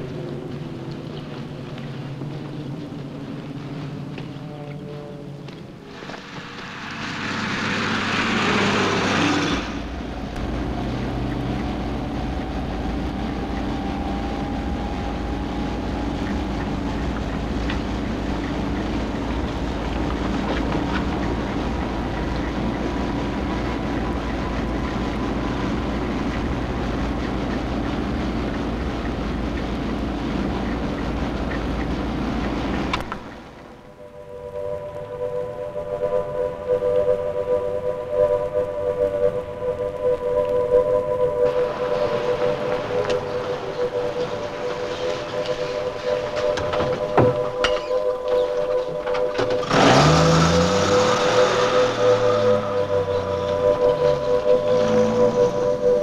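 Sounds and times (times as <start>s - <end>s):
faint rising whine: 0.0s - 56.0s
lorry engine drone: 0.0s - 56.0s
loud rushing noise: 5.8s - 56.0s.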